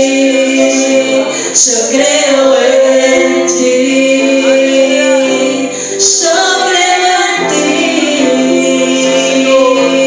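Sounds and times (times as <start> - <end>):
sustained musical accompaniment: 0.0 - 10.0
woman singing through microphone: 0.0 - 10.0.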